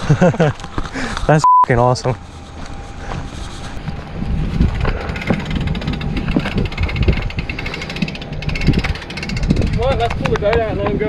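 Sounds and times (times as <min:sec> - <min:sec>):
footsteps on gravel: 0:02.1 - 0:05.4
wind rumbling on microphone: 0:02.2 - 0:11.0.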